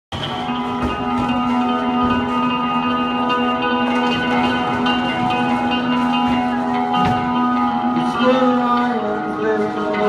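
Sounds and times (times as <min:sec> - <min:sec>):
bass guitar: 0:00.1 - 0:10.0
electric guitars ringing chord: 0:00.2 - 0:10.0.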